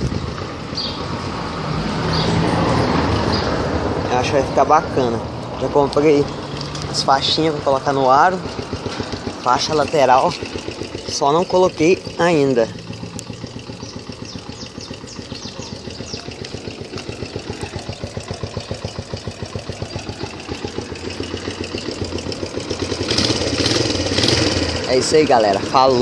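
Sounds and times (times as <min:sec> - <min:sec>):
motorcycle engine idling: 0:00.0 - 0:26.0.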